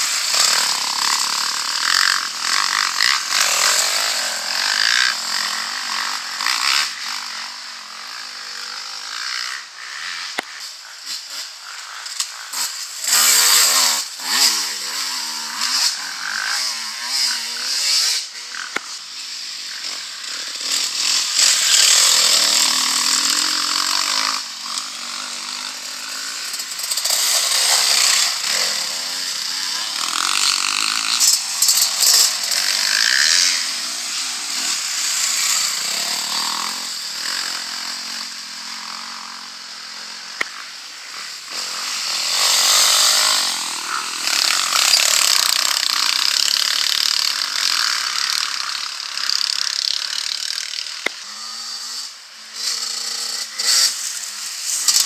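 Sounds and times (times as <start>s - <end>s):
dirt bike engines revving past: 0.0s - 55.0s.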